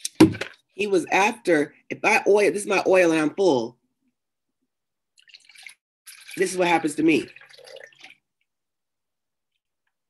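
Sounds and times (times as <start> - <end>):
water pouring into kettle: 5.2 - 8.3.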